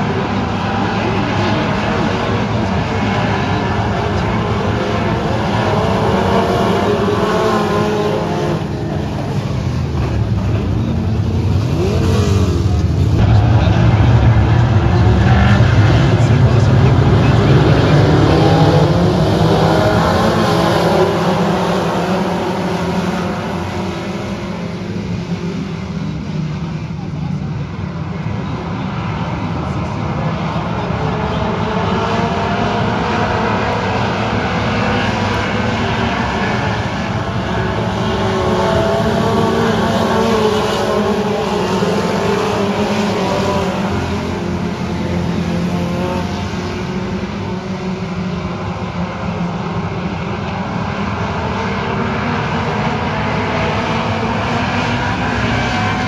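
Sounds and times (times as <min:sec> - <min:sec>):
race car engines passing: 0:00.0 - 0:56.0.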